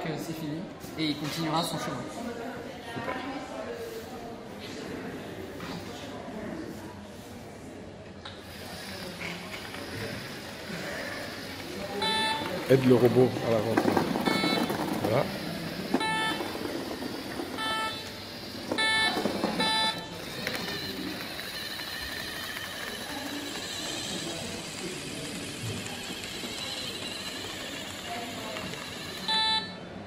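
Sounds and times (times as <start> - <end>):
faint robot motor whir: 8.3 - 29.8
short electronic beeps: 12.0 - 13.1, 14.2 - 15.0, 15.9 - 16.7, 17.5 - 21.8, 29.2 - 29.8.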